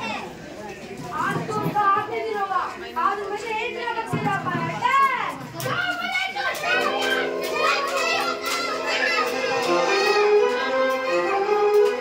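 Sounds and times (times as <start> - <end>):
children talking and calling out: 0.0 - 12.0
music with held notes: 6.6 - 12.0.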